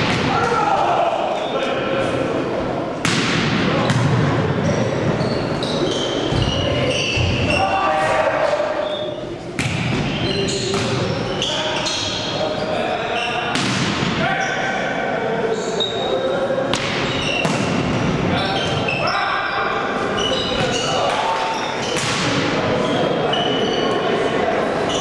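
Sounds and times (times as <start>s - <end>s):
players shouting: 0.0s - 1.9s, 6.8s - 9.2s
sneakers squeaking on court: 3.8s - 7.6s, 8.8s - 13.5s, 17.0s - 17.8s, 20.1s - 22.2s.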